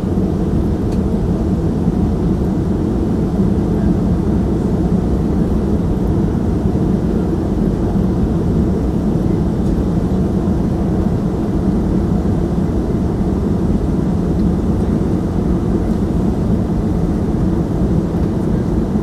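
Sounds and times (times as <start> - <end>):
jet airliner cabin rumble: 0.0 - 19.0.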